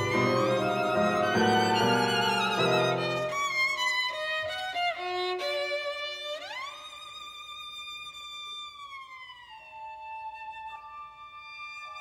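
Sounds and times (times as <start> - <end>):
low sustained tone: 0.0 - 3.5
violin sliding note: 0.0 - 3.8.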